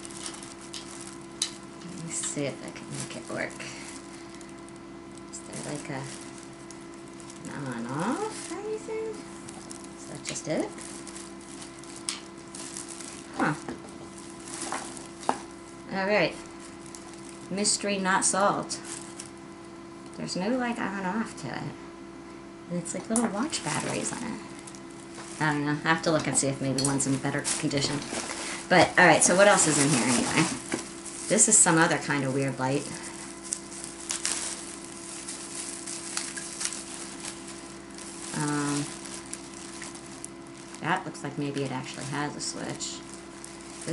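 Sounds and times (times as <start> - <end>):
soft rustle: 0.0 - 19.5, 23.6 - 25.9, 27.0 - 43.9
plastic wrapping crinkling: 0.0 - 21.2, 23.1 - 43.9
steady low hum and hiss: 0.0 - 43.9.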